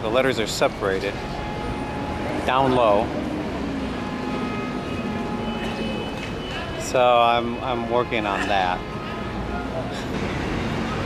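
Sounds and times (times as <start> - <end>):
mechanical drone with whining tones: 0.2 - 7.0.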